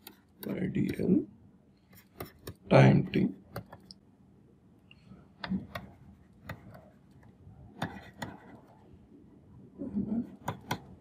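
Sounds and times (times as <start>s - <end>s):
stylus tapping on pen tablet: 1.9s - 2.7s, 3.4s - 4.0s, 5.4s - 8.8s, 10.3s - 11.0s.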